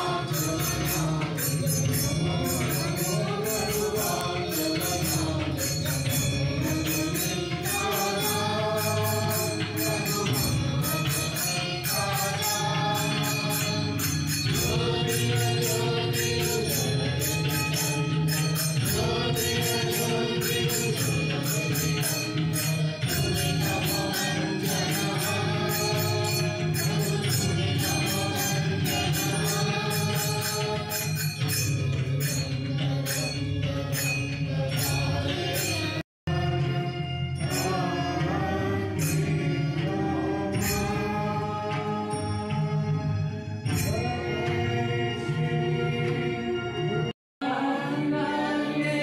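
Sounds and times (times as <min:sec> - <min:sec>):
light percussion beat: 0:00.0 - 0:36.0
devotional chant with music: 0:00.0 - 0:49.0.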